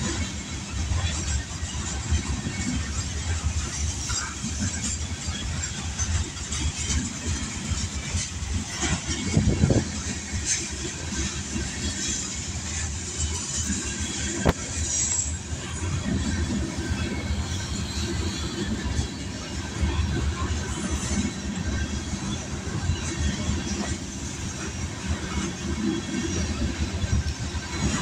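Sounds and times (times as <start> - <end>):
train cars rumbling past: 0.0 - 28.0
wheels clattering on rails: 0.0 - 28.0.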